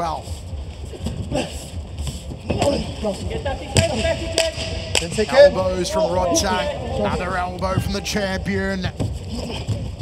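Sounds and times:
voices shouting: 2.5s - 8.4s.

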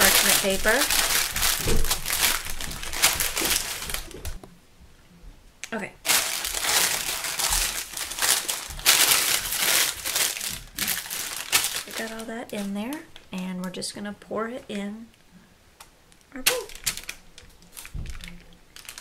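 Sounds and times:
parchment paper crinkling: 0.0s - 4.4s, 6.0s - 13.8s, 16.6s - 19.0s.

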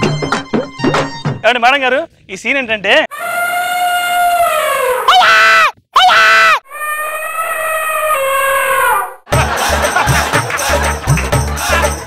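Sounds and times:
high wailing voice: 3.1s - 9.2s
music with percussion beat: 9.3s - 12.0s.

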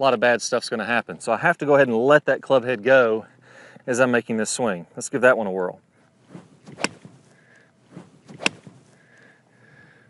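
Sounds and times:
golf club striking ball: 6.3s - 7.3s, 7.9s - 8.9s.

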